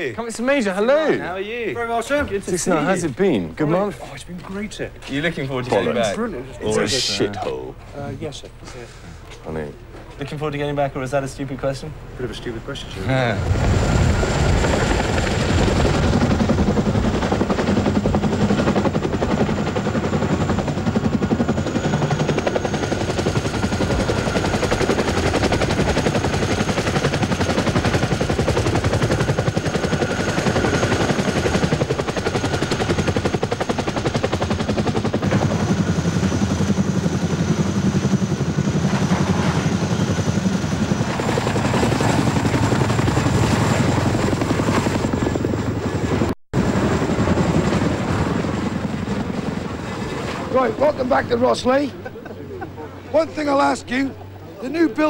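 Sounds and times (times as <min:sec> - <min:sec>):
helicopter rotors chopping: 0:00.0 - 0:07.6, 0:10.3 - 0:55.0.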